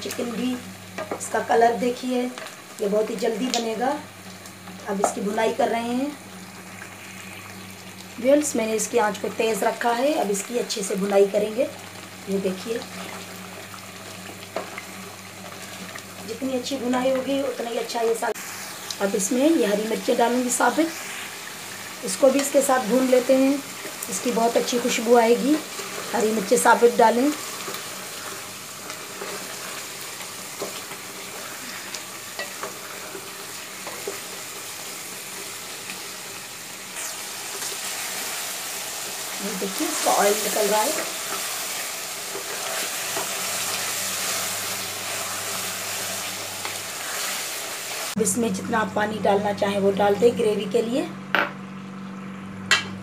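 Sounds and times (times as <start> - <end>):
curry sizzling in a pot: 0.0 - 48.3.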